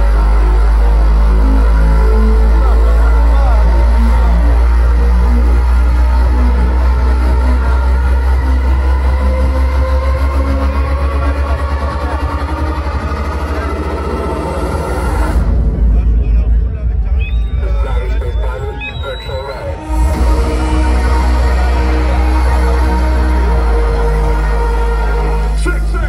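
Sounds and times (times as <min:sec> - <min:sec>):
heavy sub-bass pulsing: 0:00.0 - 0:26.0
loud electronic bass music: 0:00.0 - 0:26.0.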